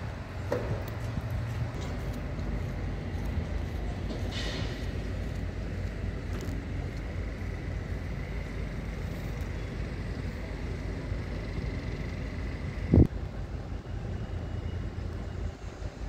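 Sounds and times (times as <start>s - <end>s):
faint steady whine: 0.0s - 16.0s
low rumble of diesel engines: 0.0s - 16.0s.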